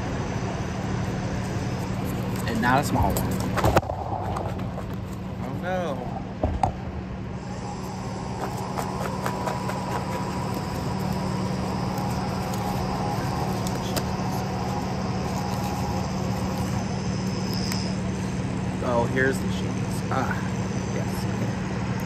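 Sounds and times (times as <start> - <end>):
low mechanical hum: 0.0 - 22.0.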